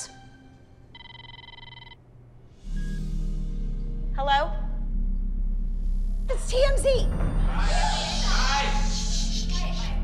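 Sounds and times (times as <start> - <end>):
phone ringtone: 0.9 - 2.0.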